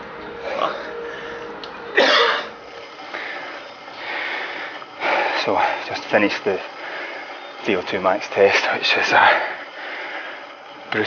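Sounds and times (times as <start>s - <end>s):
man speaking breathlessly: 5.1s - 9.8s.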